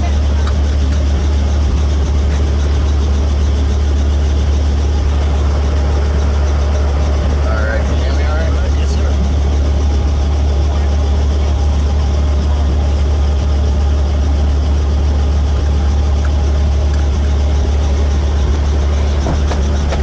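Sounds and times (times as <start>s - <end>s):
helicopter engine and rotor drone: 0.0s - 20.0s.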